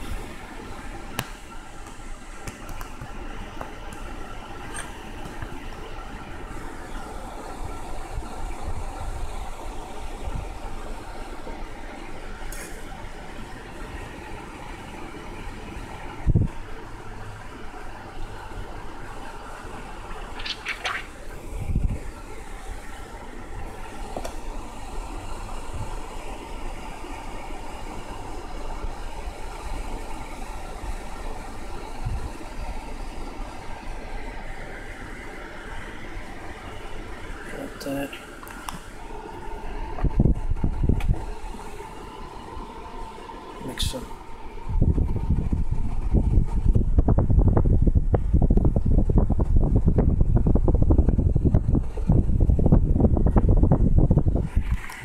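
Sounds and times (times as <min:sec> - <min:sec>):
faint steady tones: 0:00.0 - 0:20.5, 0:21.1 - 0:47.1
steady rushing noise: 0:19.5 - 0:55.0.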